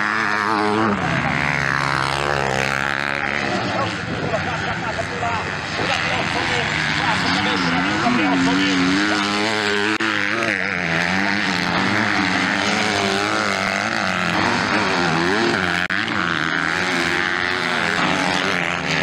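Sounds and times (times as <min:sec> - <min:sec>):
motocross bike engines revving: 0:00.0 - 0:19.0.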